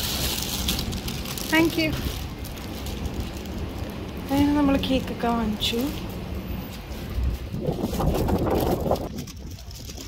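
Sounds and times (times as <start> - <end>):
wind buffeting microphone: 0.7 - 10.0.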